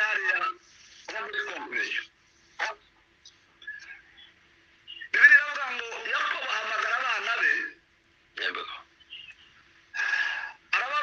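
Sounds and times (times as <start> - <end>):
man talking over online call: 0.0 - 2.9, 5.0 - 7.8, 10.7 - 11.0.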